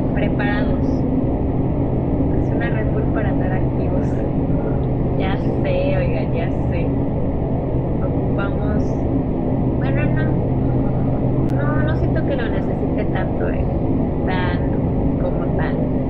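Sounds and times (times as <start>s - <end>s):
indistinct talking: 0.0s - 1.1s, 2.3s - 7.2s, 8.0s - 9.1s, 9.7s - 16.0s
low hum and rumble: 0.0s - 16.0s.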